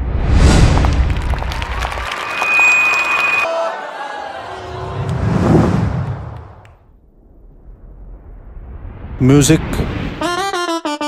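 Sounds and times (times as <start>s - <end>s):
crowd clapping and cheering: 0.6s - 6.9s
high steady whistling tone: 2.3s - 3.5s
deep rumble: 5.1s - 10.0s.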